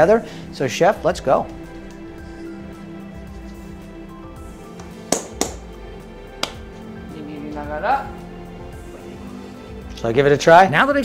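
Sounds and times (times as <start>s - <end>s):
background music: 0.0s - 11.0s
wet hands clapping: 4.8s - 5.8s, 6.4s - 6.7s.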